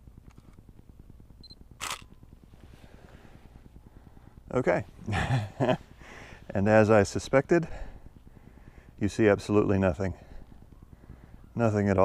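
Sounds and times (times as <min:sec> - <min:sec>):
camera focus beep: 0:01.4 - 0:02.2
camera shutter click: 0:01.8 - 0:02.2.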